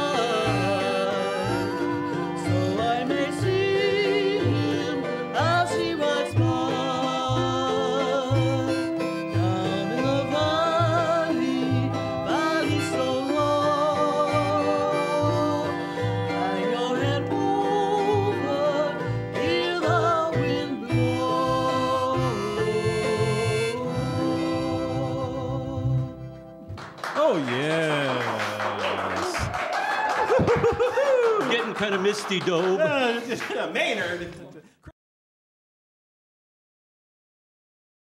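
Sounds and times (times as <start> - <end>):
washtub bass plucking: 0.0 - 28.0
plucked strings: 0.0 - 28.8.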